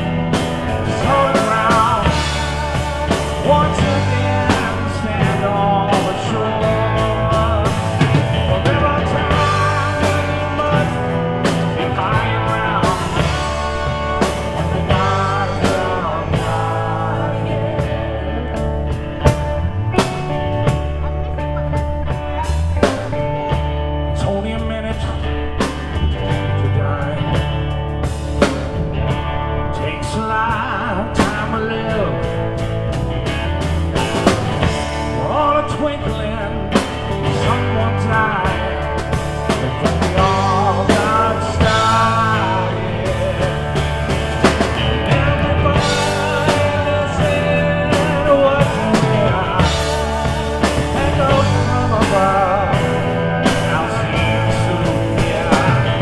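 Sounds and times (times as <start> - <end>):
drum kit beat: 0.0 - 56.0
electric guitar: 0.0 - 56.0
live rock band: 0.0 - 56.0
strummed acoustic guitar: 0.0 - 56.0.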